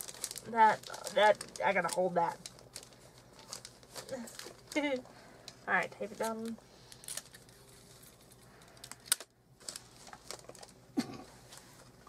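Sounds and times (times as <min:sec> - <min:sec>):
sticky tape crackling: 0:00.0 - 0:10.8.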